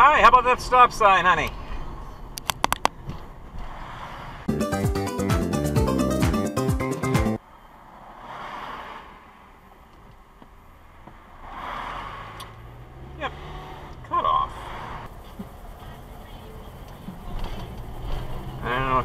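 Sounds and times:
car engine and road hum: 7.4 - 19.0.

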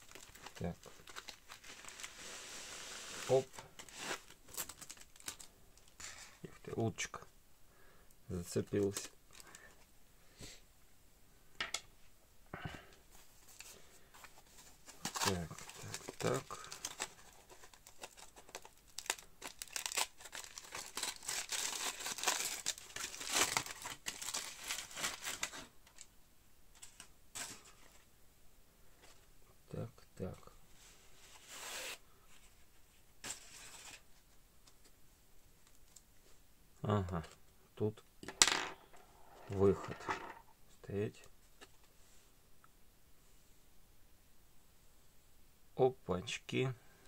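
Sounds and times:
foil crinkling: 0.0 - 5.9, 14.9 - 26.0.

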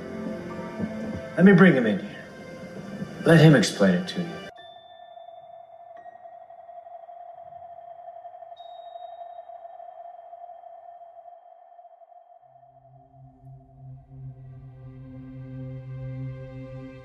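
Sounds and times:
low synth drone: 0.0 - 4.5, 12.6 - 17.0
sonar-like electronic tone: 0.0 - 15.1.

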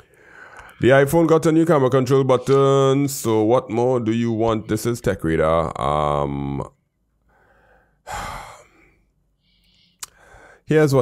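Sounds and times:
person sighing: 8.0 - 9.0.

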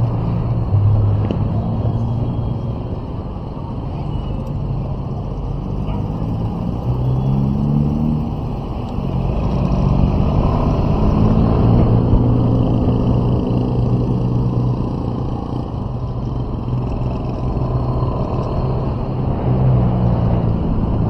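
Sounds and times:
road and wind noise: 0.0 - 21.0
vehicle engine accelerating: 0.0 - 21.0.

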